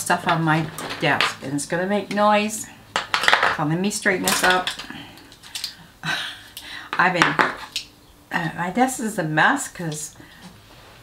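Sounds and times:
small items clattering on a desk: 0.2 - 1.5, 2.9 - 5.8.

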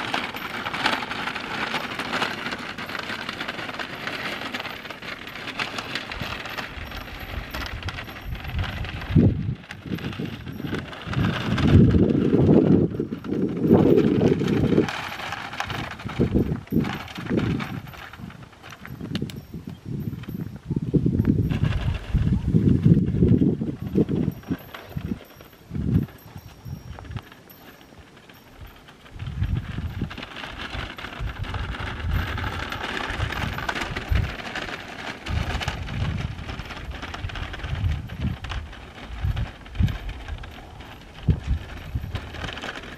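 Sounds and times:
cart wheels rattling: 0.0 - 42.9
horse hoofbeats on dirt: 0.0 - 42.9.

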